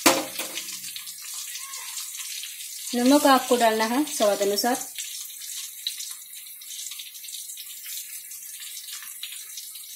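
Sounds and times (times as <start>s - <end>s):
oil sizzling: 0.0s - 9.9s.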